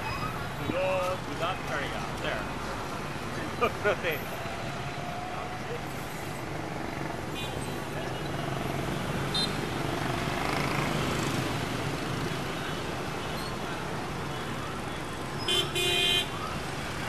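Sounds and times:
cars and bus passing: 0.0 - 17.0
motorbike and scooter engines: 0.0 - 17.0.

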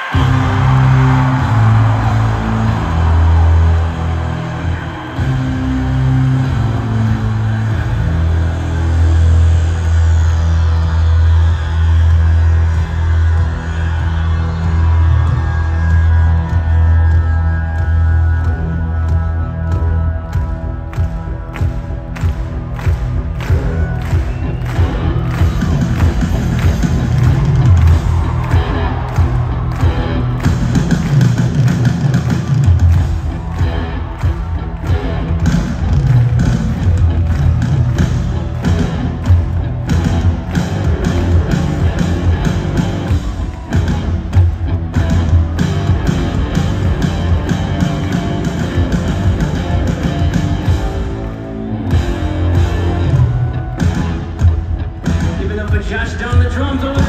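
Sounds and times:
live rock band through pa: 0.0 - 57.0.

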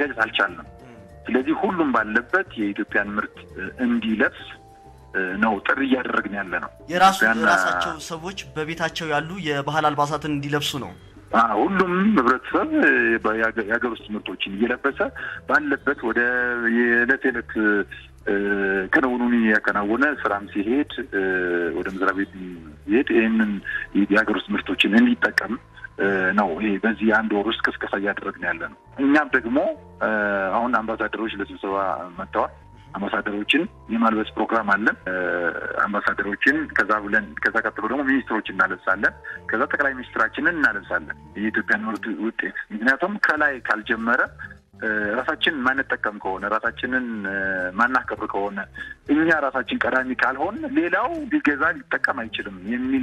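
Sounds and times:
person talking: 0.8 - 1.4, 6.8 - 11.5.

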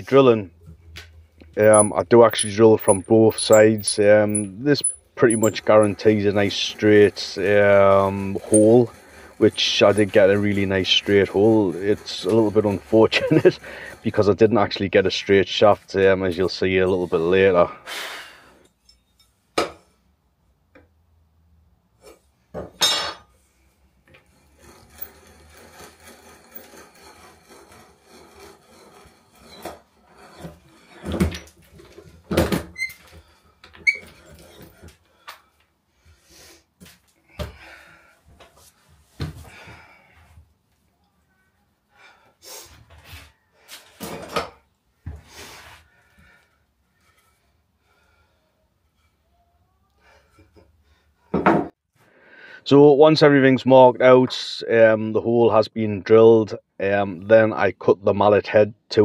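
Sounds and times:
hand drill rasping through wood: 1.6 - 17.4, 24.2 - 31.1.

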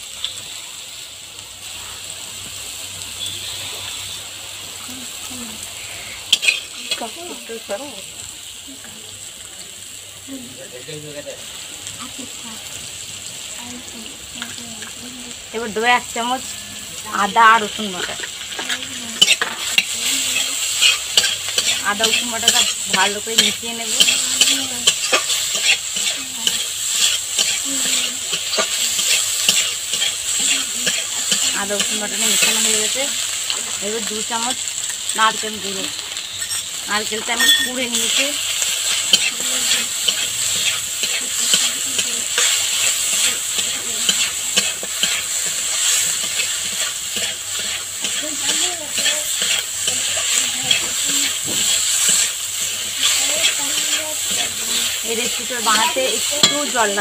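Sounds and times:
vegetables sizzling in oil: 0.0 - 57.0
spatula scraping a metal pan: 18.0 - 32.6, 36.2 - 57.0.

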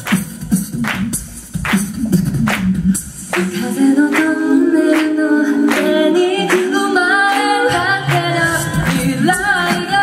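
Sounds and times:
steady beat of sharp hits: 0.0 - 3.6
women singing close harmony: 3.4 - 10.0.

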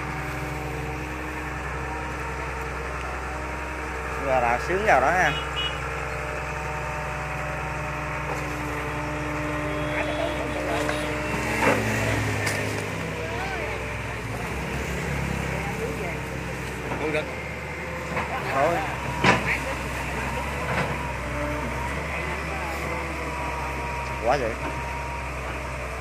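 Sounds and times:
excavator diesel engine running: 0.0 - 26.0.

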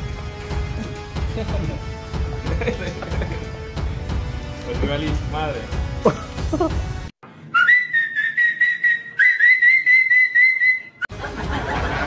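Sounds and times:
high warbling whistle blasts: 7.5 - 11.1.

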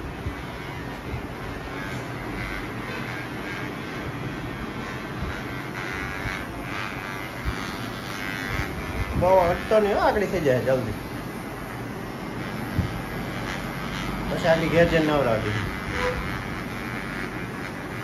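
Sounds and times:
electric hair clipper running: 0.0 - 18.0.

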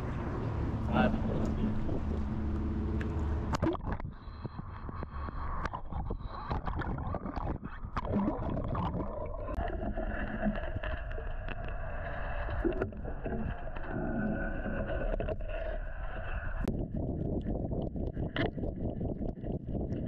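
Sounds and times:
muffled underwater gurgling: 0.8 - 20.0
small clicks and crackles: 1.4 - 20.0.

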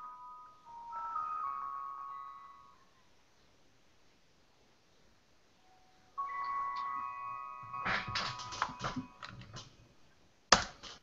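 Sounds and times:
bell-like chime: 0.0 - 3.0, 5.6 - 9.3.

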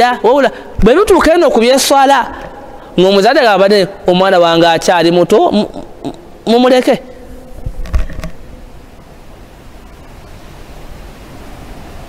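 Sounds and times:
microphone background hiss: 0.0 - 12.0.

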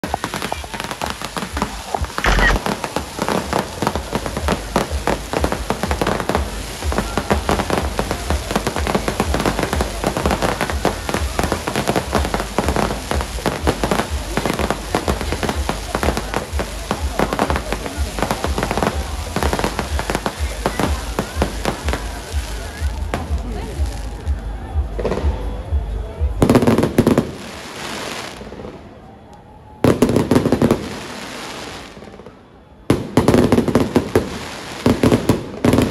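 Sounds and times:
fireworks crackling and banging: 0.0 - 35.9.

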